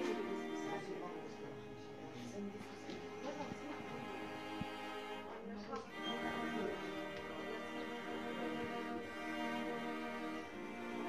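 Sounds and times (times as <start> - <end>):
slow orchestral strings: 0.0 - 11.0.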